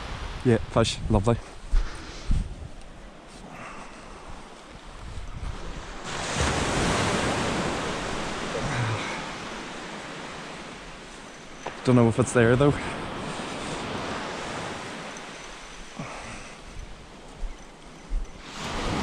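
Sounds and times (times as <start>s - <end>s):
surf breaking on beach: 5.4s - 15.4s, 18.4s - 19.0s.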